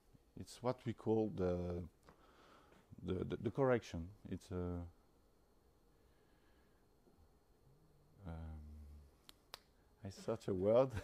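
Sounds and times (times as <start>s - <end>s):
man humming hesitantly: 8.2s - 9.1s.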